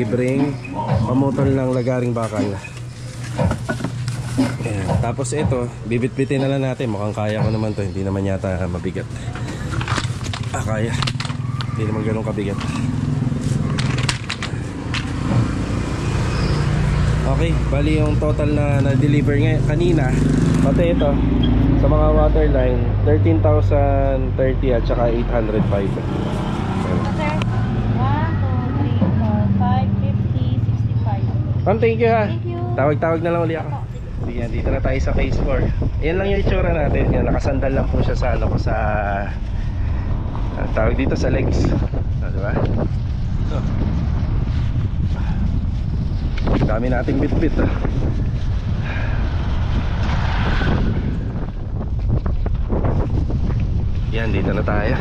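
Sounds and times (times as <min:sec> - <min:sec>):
indistinct talking: 0:00.0 - 0:38.7
low motor hum: 0:00.0 - 0:55.0
road noise: 0:00.0 - 0:55.0
wind buffeting microphone: 0:04.4 - 0:55.0.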